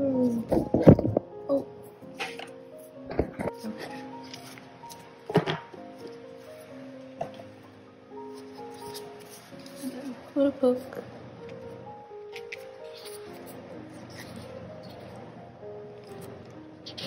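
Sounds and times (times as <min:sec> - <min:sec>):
soft piano music: 0:00.0 - 0:17.0
cardboard album handling: 0:02.2 - 0:02.5, 0:03.1 - 0:07.6, 0:08.3 - 0:10.3, 0:12.3 - 0:15.2.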